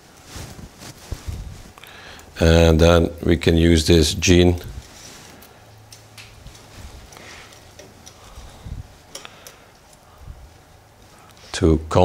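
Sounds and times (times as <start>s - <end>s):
low steady hum: 0.0s - 12.0s
wire clicks and rustling: 4.3s - 11.4s.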